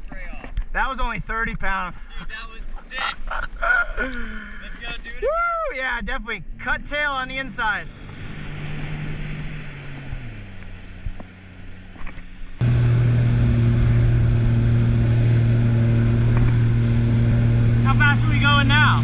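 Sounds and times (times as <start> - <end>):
jet ski engine: 7.3 - 19.0.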